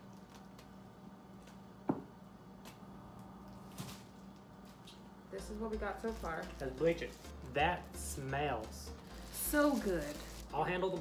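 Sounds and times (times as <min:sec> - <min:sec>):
low room hum: 0:00.0 - 0:11.0
fabric rustling: 0:09.0 - 0:10.6.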